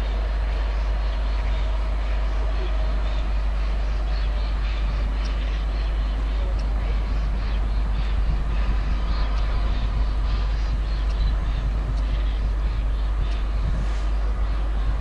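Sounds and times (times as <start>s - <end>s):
deep low hum: 0.0s - 15.0s
steam locomotive rumbling: 0.0s - 15.0s.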